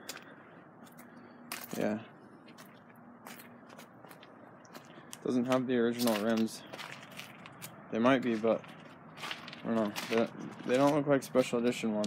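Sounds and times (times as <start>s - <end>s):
footsteps scuffing on asphalt: 0.0s - 12.0s.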